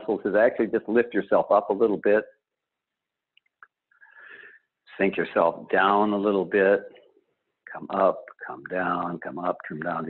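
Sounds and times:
soft breath: 0:04.0 - 0:04.7.

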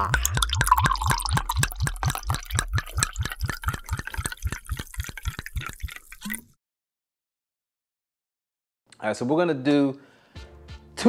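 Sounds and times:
dripping liquid-like clicks: 0:00.0 - 0:06.6.

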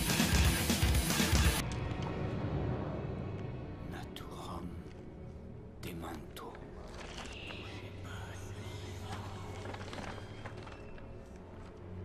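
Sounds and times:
man whispering: 0:03.9 - 0:05.0, 0:05.8 - 0:09.9.

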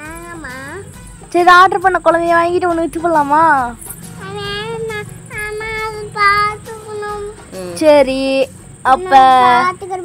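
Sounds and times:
small girl singing: 0:04.2 - 0:07.7.

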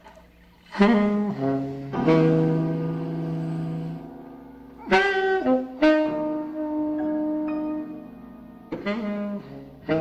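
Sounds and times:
jazz saxophone notes: 0:00.6 - 0:10.0.

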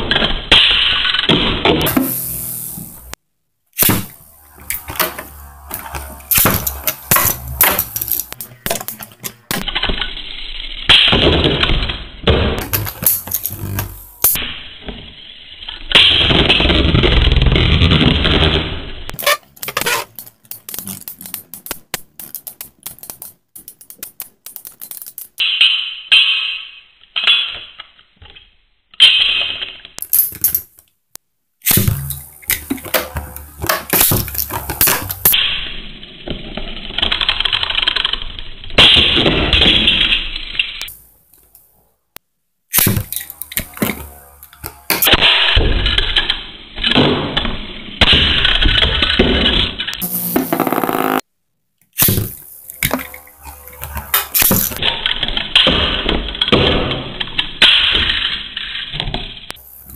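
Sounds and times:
spinning tops clashing: 0:01.8 - 0:03.2, 0:03.8 - 0:09.6, 0:12.6 - 0:14.4, 0:30.0 - 0:30.7
spinning tops grinding: 0:01.8 - 0:03.2, 0:03.8 - 0:09.6, 0:12.6 - 0:14.4, 0:30.0 - 0:30.7, 0:31.7 - 0:35.4, 0:42.8 - 0:45.6, 0:50.0 - 0:51.2, 0:52.0 - 0:54.8, 0:59.6 - 0:59.9.

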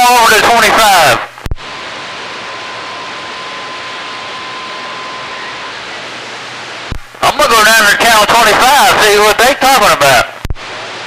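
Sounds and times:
radio static hiss: 0:00.0 - 0:11.0
faint steady whistle: 0:02.4 - 0:06.1
radio click: 0:10.4 - 0:10.6.

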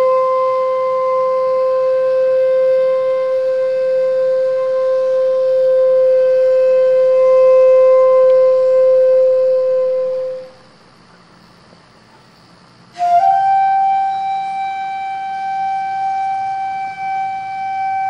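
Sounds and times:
bamboo flute long note: 0:00.0 - 0:10.7, 0:12.9 - 0:18.0.

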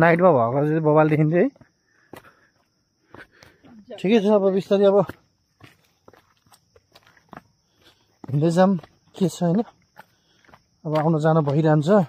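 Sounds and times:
footsteps on stony dirt trail: 0:00.0 - 0:12.0.

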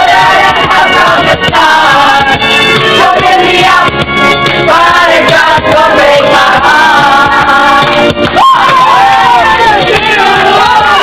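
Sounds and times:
woman singing into a microphone: 0:00.0 - 0:03.9, 0:08.6 - 0:11.0
loud amplified music with beat: 0:00.0 - 0:11.0.

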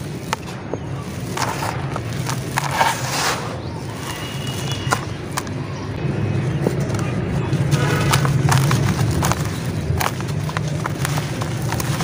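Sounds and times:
soft crackles: 0:00.0 - 0:05.6, 0:06.6 - 0:12.0
dirt crumbling into a plastic tub: 0:00.2 - 0:05.5.

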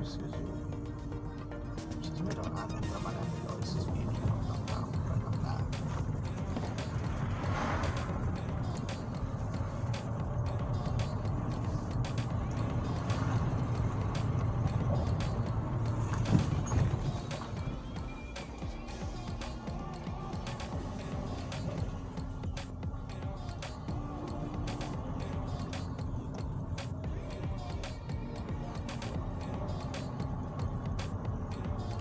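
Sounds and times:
car engine and road drone: 0:00.0 - 0:32.0
music playing: 0:00.0 - 0:32.0.

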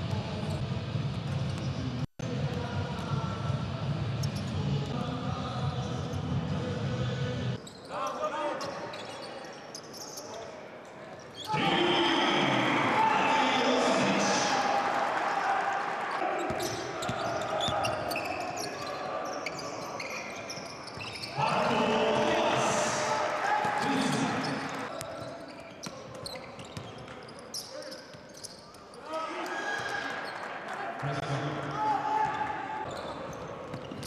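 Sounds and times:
voices of players and spectators: 0:00.0 - 0:34.0.

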